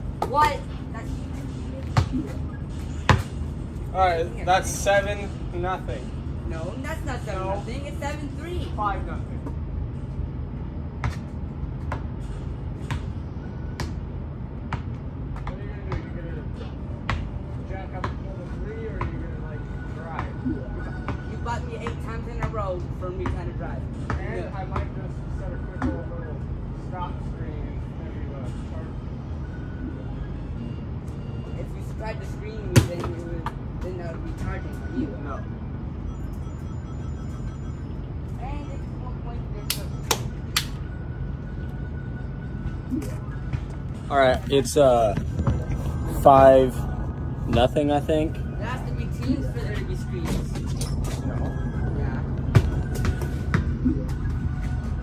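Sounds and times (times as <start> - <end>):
basketball bouncing on pavement: 1.8 - 3.4, 11.0 - 12.2, 12.8 - 13.2, 14.7 - 16.2, 17.0 - 19.3, 21.0 - 25.0, 32.6 - 34.0, 52.3 - 54.3
steady low rumble: 37.8 - 55.0.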